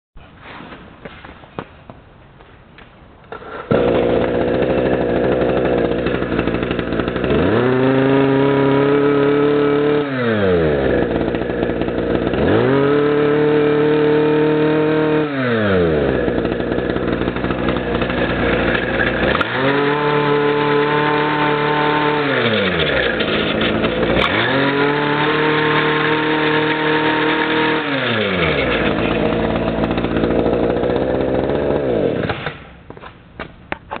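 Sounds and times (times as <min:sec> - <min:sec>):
brush cutter engine revving: 0:03.4 - 0:32.7.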